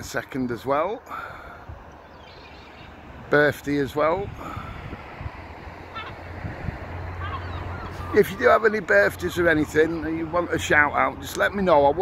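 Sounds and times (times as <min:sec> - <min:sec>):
wind on microphone: 0:01.5 - 0:08.2
faint call: 0:05.9 - 0:06.3, 0:07.1 - 0:08.7.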